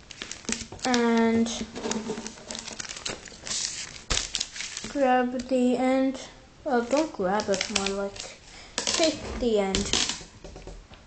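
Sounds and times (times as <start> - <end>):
plastic bag crinkling: 0.0 - 5.5, 6.9 - 10.2.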